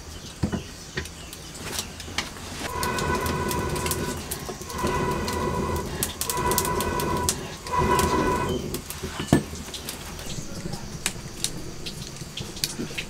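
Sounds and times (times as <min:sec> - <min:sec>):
hollow whistle from blowpipe: 0:02.7 - 0:08.9.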